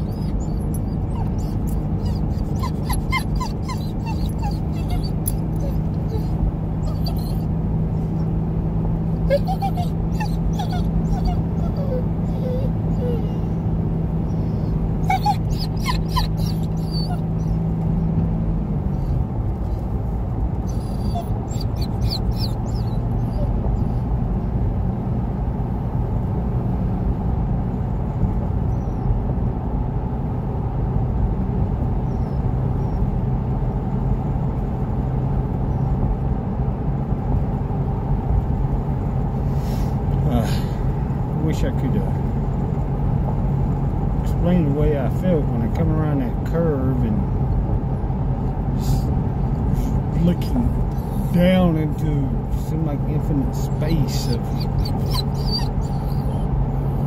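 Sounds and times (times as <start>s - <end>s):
dog whining: 0.0s - 8.4s, 9.2s - 17.8s, 20.6s - 24.1s, 28.7s - 29.1s, 32.1s - 33.1s, 39.6s - 40.9s, 48.8s - 50.1s, 50.8s - 51.4s, 53.6s - 57.0s
car engine and road hum: 0.0s - 57.0s.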